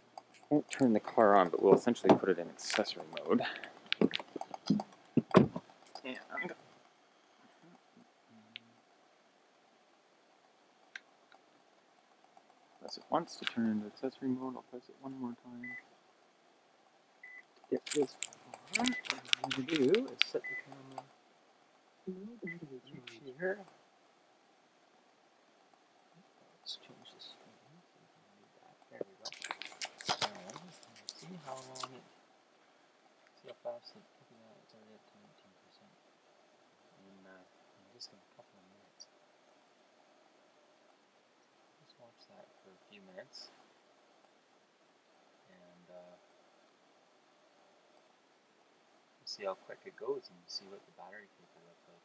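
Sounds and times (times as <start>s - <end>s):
man speaking quietly: 0.4s - 4.8s, 5.9s - 6.6s, 12.8s - 15.8s, 17.7s - 21.1s, 22.1s - 23.7s, 26.2s - 29.4s, 30.1s - 32.1s, 33.4s - 36.0s, 37.0s - 39.1s, 41.8s - 43.6s, 45.5s - 46.2s, 49.2s - 52.0s
deep thump: 1.7s - 2.4s, 5.2s - 5.6s
clicks: 12.3s - 13.8s, 17.4s - 21.1s.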